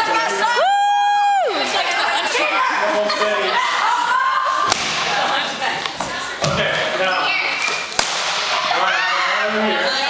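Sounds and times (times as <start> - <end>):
sharp crack: 4.7 - 5.2, 7.6 - 8.6.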